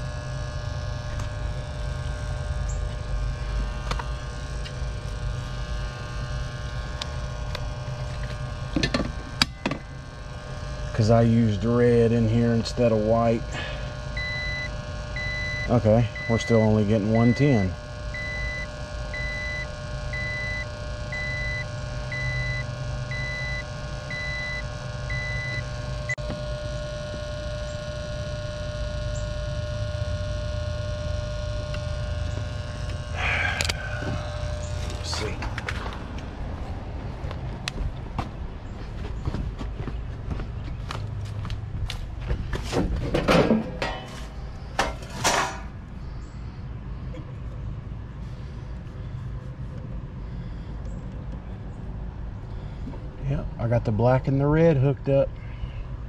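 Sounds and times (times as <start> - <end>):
low electrical hum: 0.0 - 56.0
high beep: 14.2 - 17.6.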